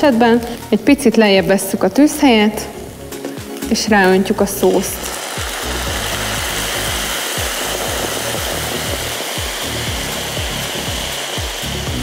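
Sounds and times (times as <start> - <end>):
faint background music: 0.0 - 12.0
sauce sizzling in a hot pan: 0.0 - 12.0.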